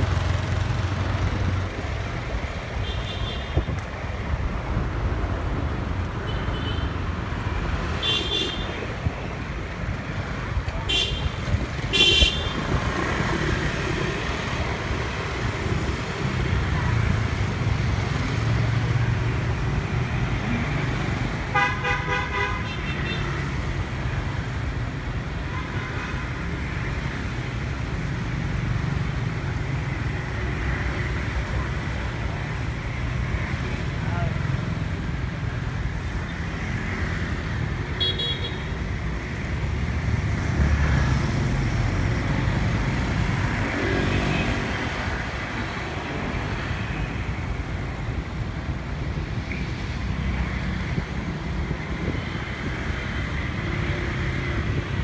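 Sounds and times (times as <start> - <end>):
engine and road rumble: 0.0 - 55.0
car horn: 11.9 - 12.6, 21.5 - 23.3, 38.0 - 38.7.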